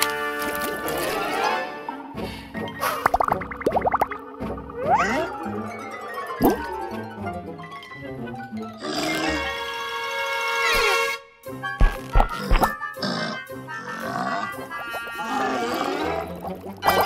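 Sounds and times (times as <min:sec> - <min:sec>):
cartoon background music: 0:00.0 - 0:17.0.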